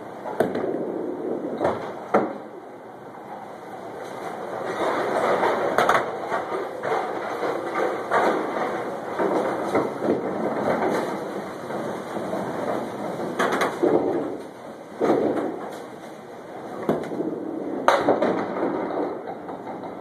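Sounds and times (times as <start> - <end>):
bowling alley rumble: 0.0 - 20.0.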